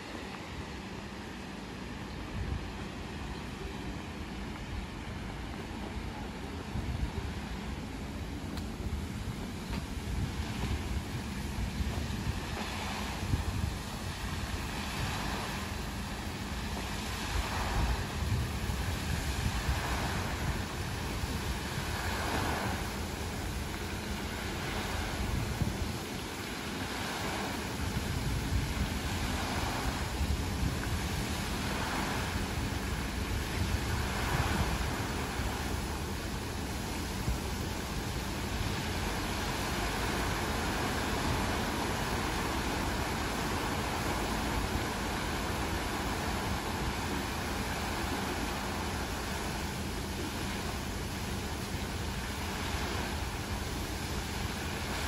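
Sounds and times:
fountain water splashing: 0.0 - 55.0
wind buffeting microphone: 0.0 - 55.0.

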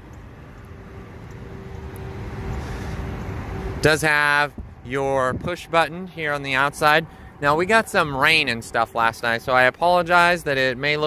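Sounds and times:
road traffic hum: 0.0 - 11.0
vehicle approaching: 0.0 - 11.0.

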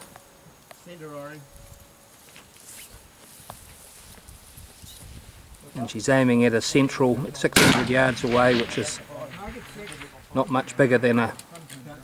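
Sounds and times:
faint outdoor background: 0.0 - 12.0
man's voice: 5.7 - 11.4.

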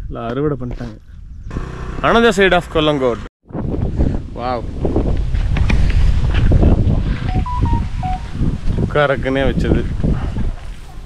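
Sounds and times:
wind buffeting microphone: 3.5 - 11.0.

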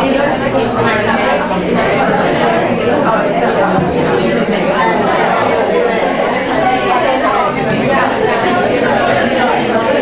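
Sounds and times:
hubbub of overlapping voices: 0.0 - 10.0.

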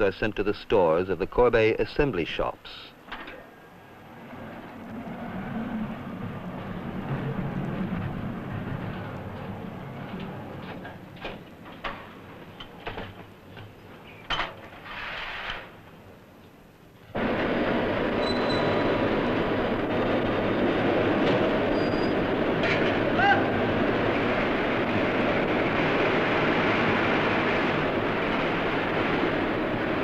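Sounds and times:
loud steady forge shop noise: 17.1 - 30.0.

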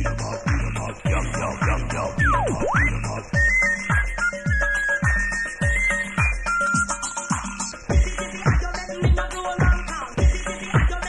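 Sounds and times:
kick-drum beat: 0.0 - 11.0
high beeping synthesizer melody: 2.2 - 3.4.

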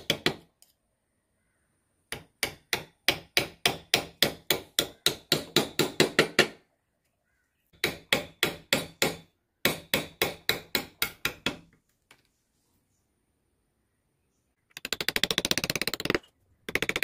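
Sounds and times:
mallet tapping carving gouge: 2.1 - 6.6.

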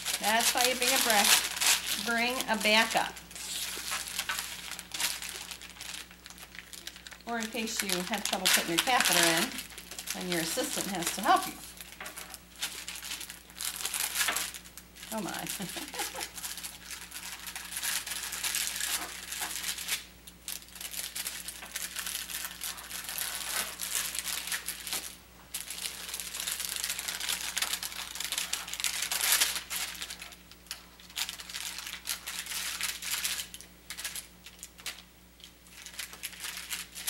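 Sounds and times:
paper wrapper crinkling: 0.0 - 37.0.

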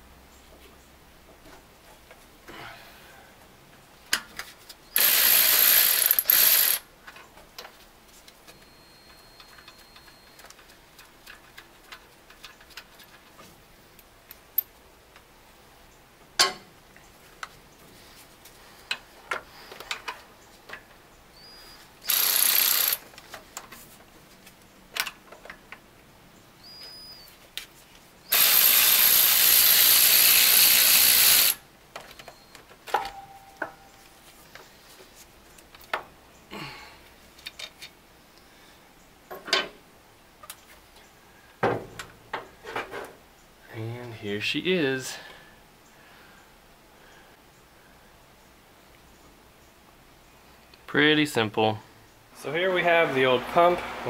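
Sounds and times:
ratchet wrench clicking: 5.0 - 6.8, 22.0 - 23.0, 28.3 - 31.6
tools tapping on metal: 16.4 - 16.7, 32.9 - 34.0.

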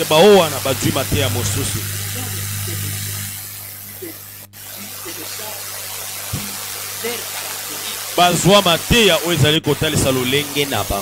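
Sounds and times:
electrical hum with hiss: 0.0 - 11.0.

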